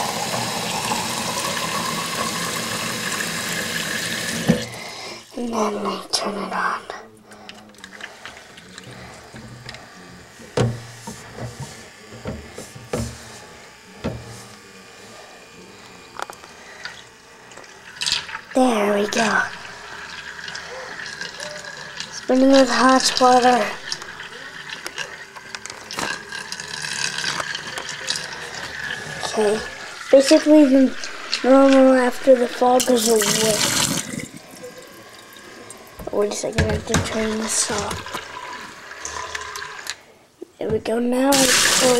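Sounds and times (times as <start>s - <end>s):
knocks of container handling: 10.5s - 13.2s.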